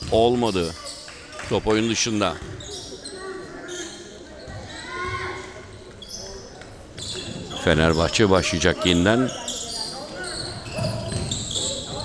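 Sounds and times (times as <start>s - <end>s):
basketball shoes squeaking: 2.4s - 8.3s, 9.0s - 12.0s.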